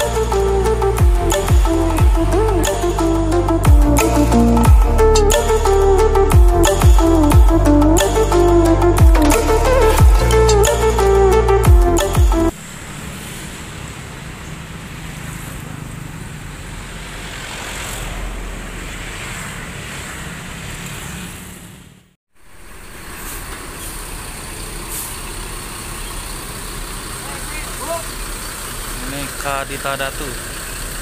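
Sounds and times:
diesel bus idling: 22.4s - 31.0s.

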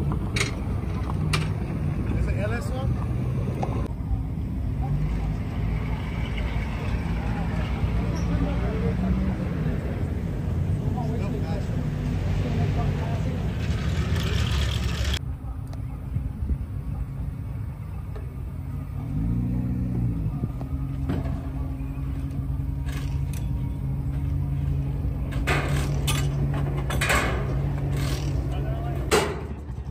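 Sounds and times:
engine revving: 4.6s - 15.2s, 18.7s - 28.8s.

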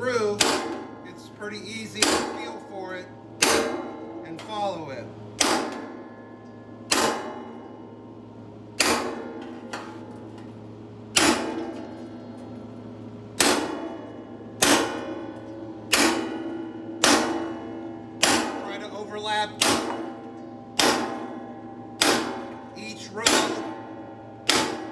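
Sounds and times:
sheet metal ringing: 0.0s - 24.9s
hammer striking chisel on sheet metal: 0.1s - 1.2s, 2.0s - 2.7s, 3.4s - 4.6s, 5.4s - 6.2s, 6.9s - 7.7s, 8.8s - 10.2s, 11.1s - 12.2s, 13.4s - 24.9s.

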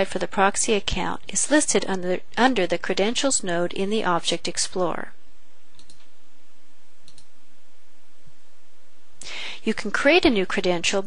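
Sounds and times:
computer mouse clicks: 5.7s - 6.1s, 7.0s - 7.3s.

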